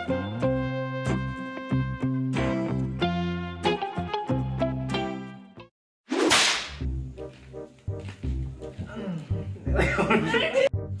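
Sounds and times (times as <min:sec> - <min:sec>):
whip-crack swish: 0:06.1 - 0:06.9.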